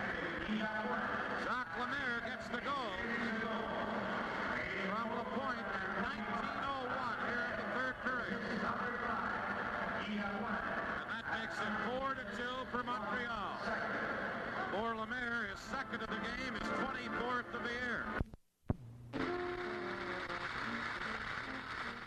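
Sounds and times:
crowd noise: 0.0s - 18.2s
man talking: 14.7s - 18.2s.

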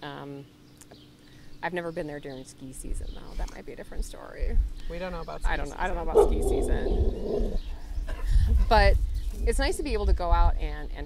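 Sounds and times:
low rumble: 5.5s - 10.6s
dog growling low: 6.1s - 7.8s.

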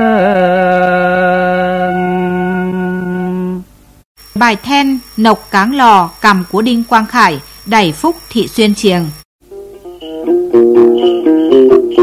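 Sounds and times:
man holding a sung note: 0.0s - 3.7s.

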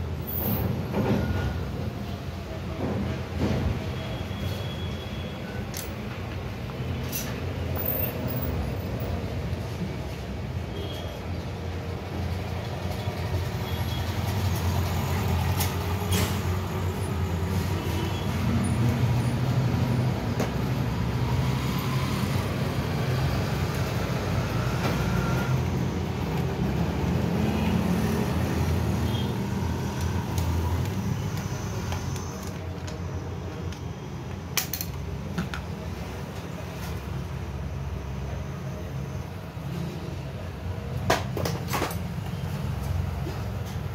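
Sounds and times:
traffic engine rumble: 0.0s - 43.9s.

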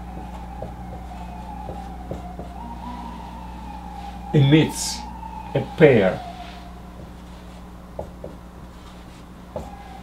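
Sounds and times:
low steady hum: 0.0s - 10.0s
steady high whine: 0.0s - 10.0s.

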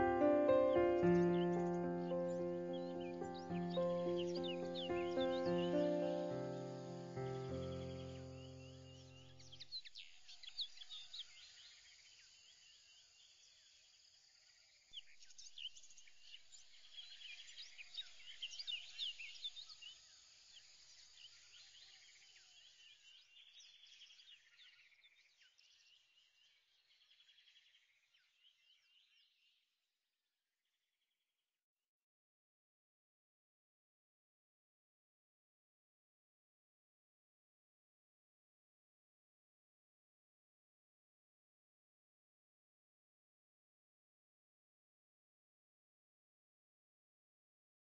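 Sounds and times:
music chord: 0.0s - 9.0s
birds chirping: 0.0s - 11.2s.

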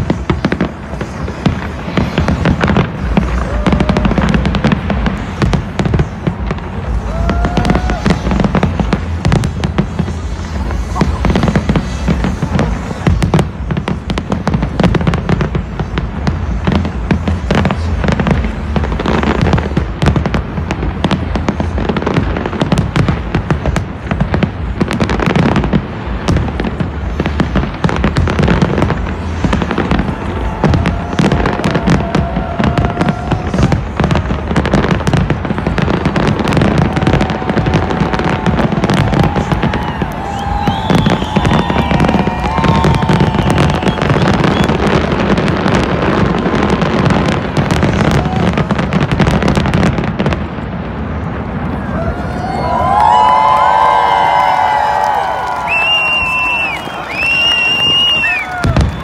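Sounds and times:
fireworks bangs and crackles: 0.0s - 59.0s.

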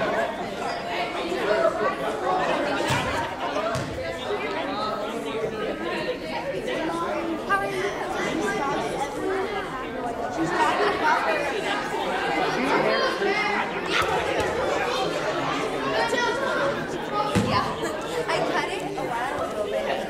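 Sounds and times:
many voices chattering: 0.0s - 20.0s.

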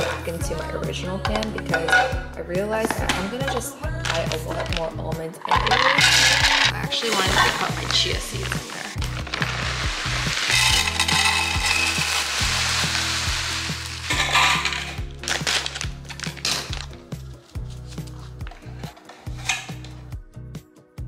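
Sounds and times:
seeds pouring into plastic canister: 8.3s - 14.2s.

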